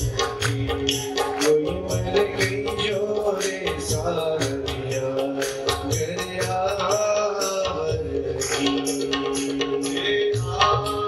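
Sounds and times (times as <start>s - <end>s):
tabla strokes: 0.0s - 11.0s.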